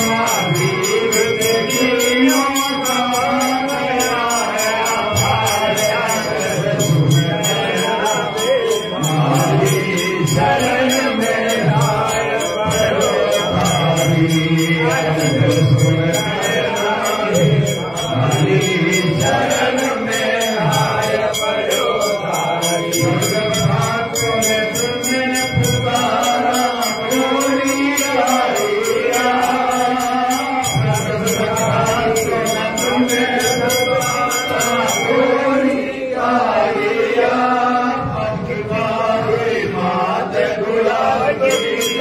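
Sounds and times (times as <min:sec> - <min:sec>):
mantras being chanted: 0:00.0 - 0:42.0.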